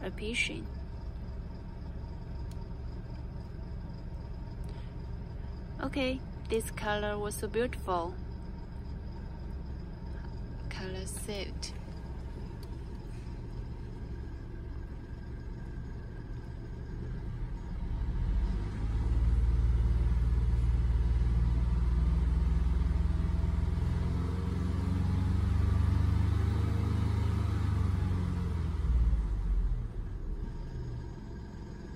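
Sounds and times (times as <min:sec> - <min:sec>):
low rumble: 0:00.0 - 0:22.3.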